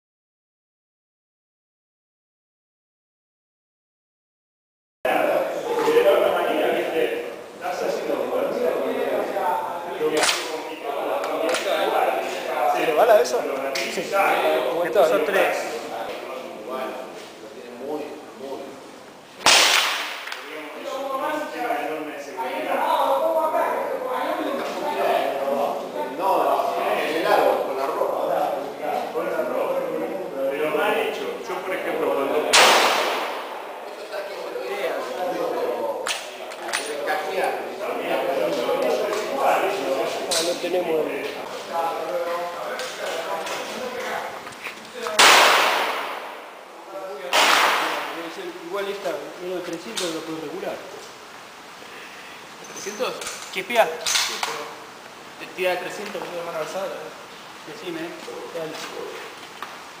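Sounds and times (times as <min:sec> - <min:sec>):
rifle shot echoing: 0:19.4 - 0:20.4, 0:32.5 - 0:33.8, 0:45.2 - 0:46.5, 0:47.3 - 0:48.2.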